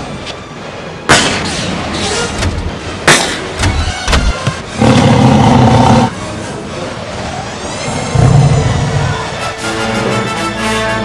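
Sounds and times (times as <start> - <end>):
sharp bangs: 1.1 - 4.8
loud sustained roar: 4.7 - 6.2
orchestral music: 8.6 - 11.0.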